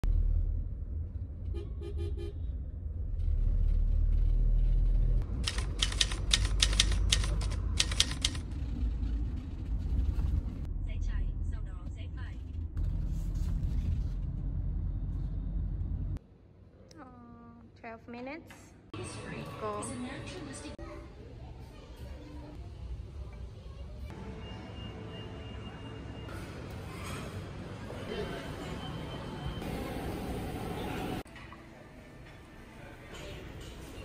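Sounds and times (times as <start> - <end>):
vehicle horn toots: 1.4 - 2.5
quick clicks: 5.4 - 8.5.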